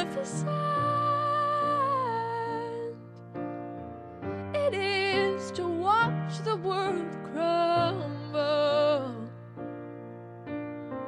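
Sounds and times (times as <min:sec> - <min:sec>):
piano chords: 0:00.0 - 0:11.0.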